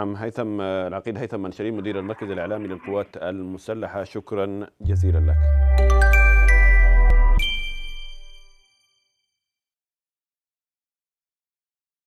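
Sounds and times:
deep bass tone: 0:04.8 - 0:07.7
chime-like jingle note: 0:05.0 - 0:09.2.

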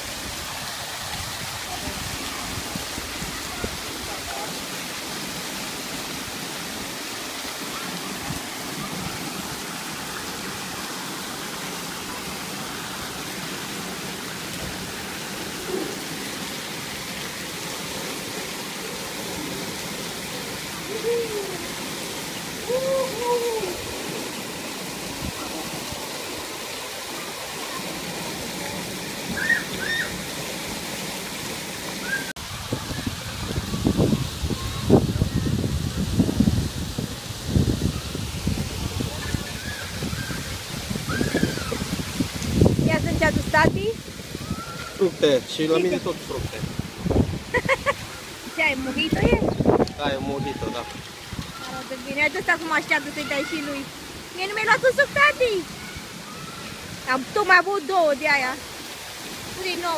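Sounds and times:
water pouring and splashing: 0:00.0 - 0:59.9
distant children calling: 0:29.2 - 0:30.3, 0:39.1 - 0:42.0, 0:44.3 - 0:45.4, 0:47.9 - 0:57.3.

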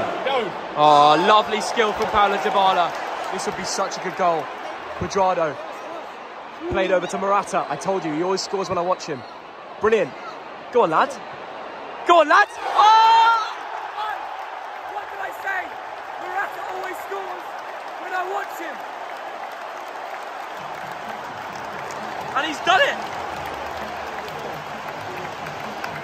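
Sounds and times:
stadium crowd cheering and applauding: 0:00.0 - 0:26.0.

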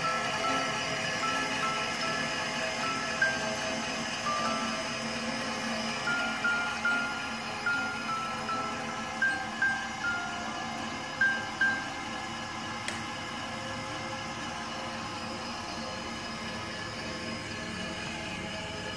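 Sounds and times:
music box playing: 0:00.0 - 0:12.2
steady mechanical hum: 0:00.0 - 0:18.9.

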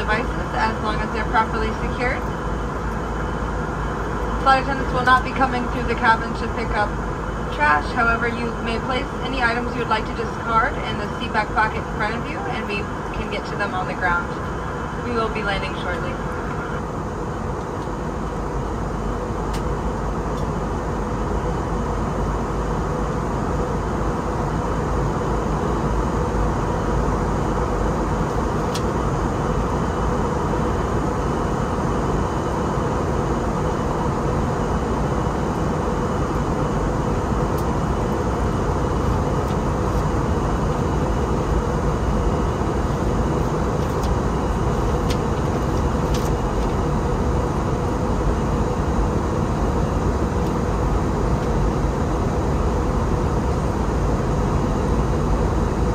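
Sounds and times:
jet engines: 0:00.0 - 0:55.9
steady hum: 0:00.0 - 0:55.9.

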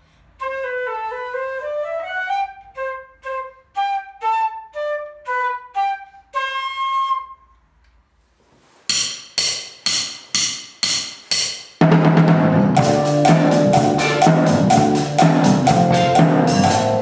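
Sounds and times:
flute melody: 0:00.4 - 0:07.7, 0:12.8 - 0:17.0
drum kit: 0:08.9 - 0:17.0.

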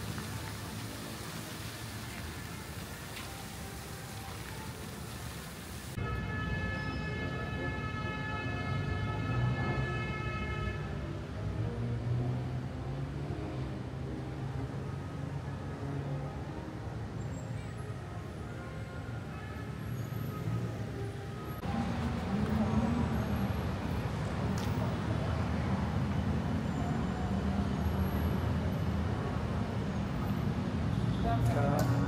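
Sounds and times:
fountain water splashing: 0:00.0 - 0:06.0
traffic rumble: 0:00.0 - 0:06.5, 0:10.0 - 0:32.0.

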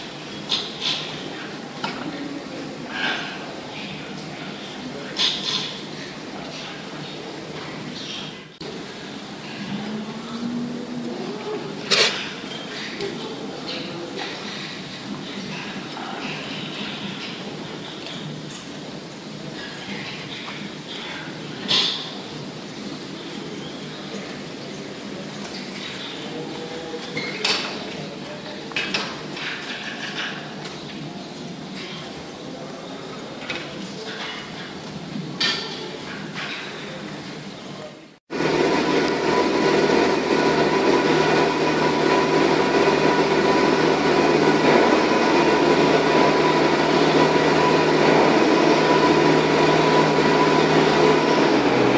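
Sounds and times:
cows feeding in barn: 0:00.0 - 0:51.9
loud machine drone: 0:38.3 - 0:51.9.

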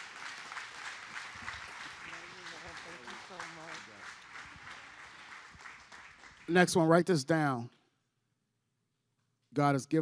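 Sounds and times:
crowd applauding: 0:00.0 - 0:07.0.

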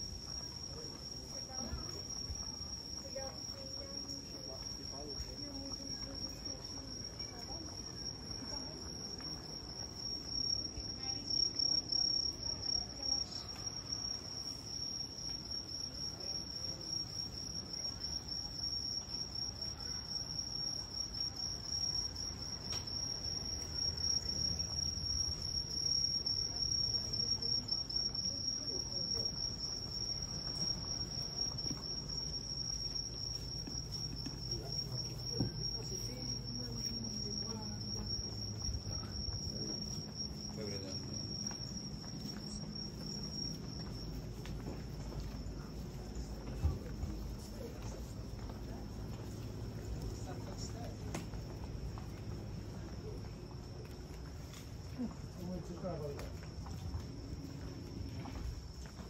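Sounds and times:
crickets chirping: 0:00.0 - 0:59.0.

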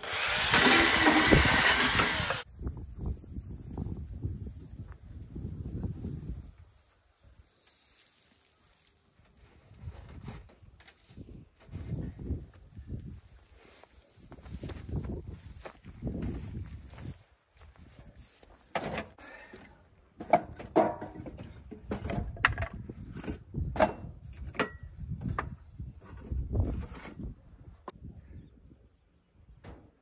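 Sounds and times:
wooden logs knocking: 0:20.2 - 0:22.8.

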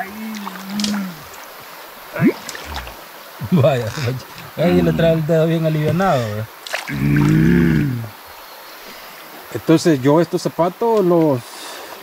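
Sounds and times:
person humming low: 0:00.0 - 0:01.3, 0:02.6 - 0:03.0, 0:06.9 - 0:08.1.

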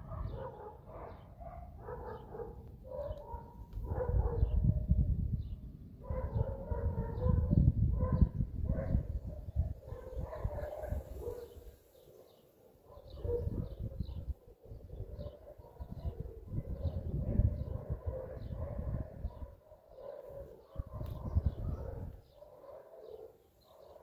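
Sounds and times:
dog barking: 0:00.0 - 0:05.0, 0:06.0 - 0:24.0.

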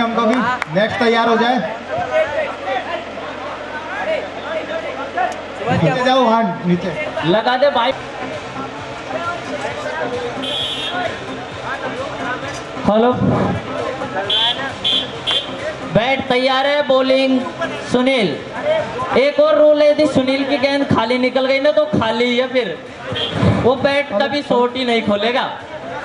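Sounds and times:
background chatter: 0:00.0 - 0:26.0
indistinct men's voices talking: 0:00.0 - 0:26.0.

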